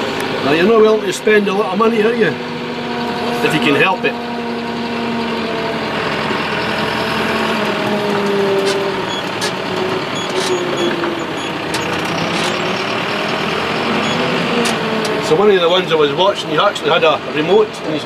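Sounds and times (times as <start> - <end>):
tractor engine drone: 0.0 - 18.0.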